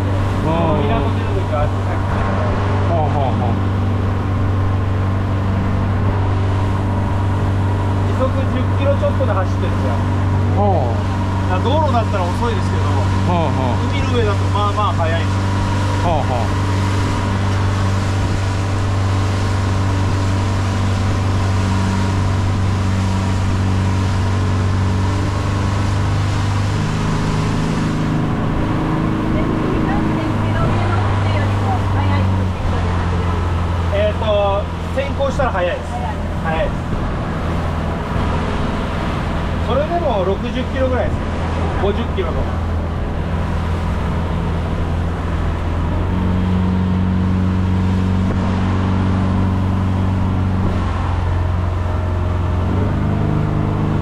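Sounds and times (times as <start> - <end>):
motorboat engine droning: 0.0 - 54.0
wind and water rush: 0.0 - 54.0.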